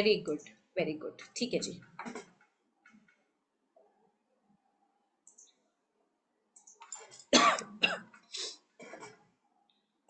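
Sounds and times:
person coughing: 0:07.3 - 0:09.2.

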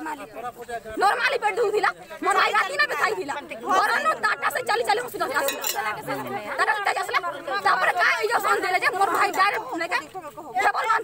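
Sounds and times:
voices talking over each other: 0:00.0 - 0:11.0.

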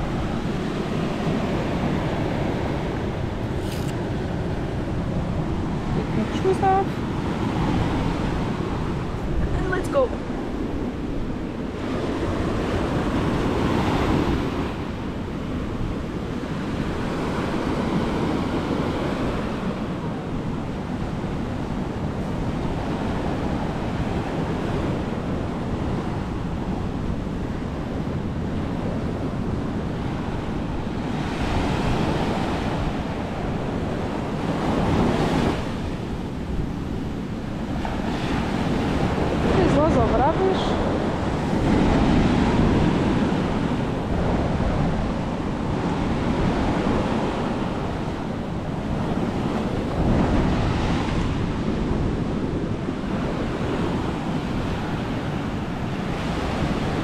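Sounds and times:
ocean surf breaking on beach: 0:00.0 - 0:57.0
wind buffeting microphone: 0:00.0 - 0:57.0.

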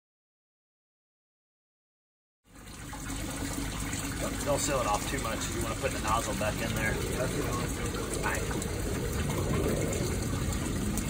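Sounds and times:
water running in manhole: 0:02.4 - 0:11.0.

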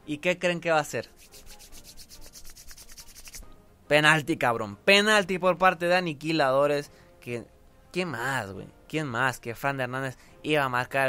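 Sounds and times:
hands rubbing together: 0:01.0 - 0:03.5.

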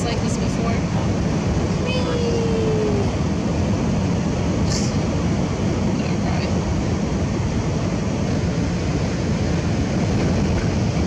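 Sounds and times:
road and wind noise in vehicle: 0:00.0 - 0:11.0.

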